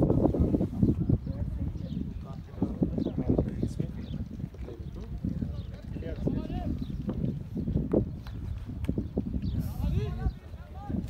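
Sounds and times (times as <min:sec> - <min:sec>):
wind rumble on microphone: 0:00.0 - 0:11.0.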